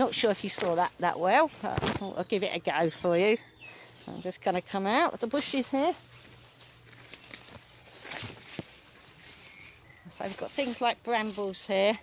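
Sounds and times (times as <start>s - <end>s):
footsteps on dry leaves: 0.0s - 11.9s
leaves and twigs rustling: 0.0s - 12.0s.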